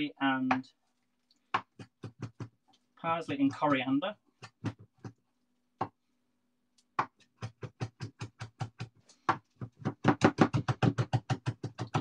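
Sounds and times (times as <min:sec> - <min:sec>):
knife chopping on wooden board: 0:01.5 - 0:02.6, 0:04.4 - 0:05.2, 0:07.0 - 0:12.0.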